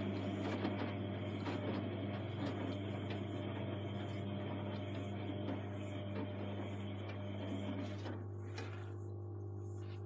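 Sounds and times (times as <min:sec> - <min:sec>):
washing machine motor hum: 0:00.0 - 0:10.0.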